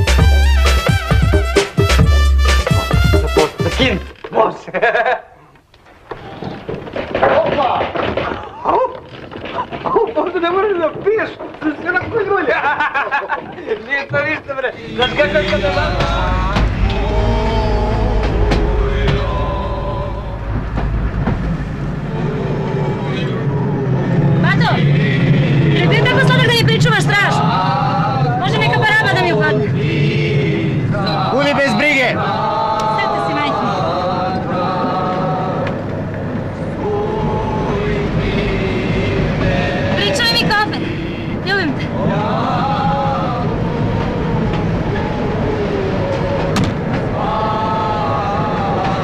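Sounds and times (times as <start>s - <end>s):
low rumble of moving vehicle: 8.4s - 49.0s
voices singing and calling: 14.6s - 49.0s.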